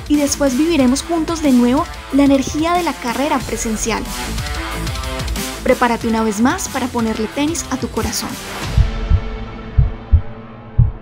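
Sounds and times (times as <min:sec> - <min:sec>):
heartbeat thumps: 0:07.1 - 0:11.0.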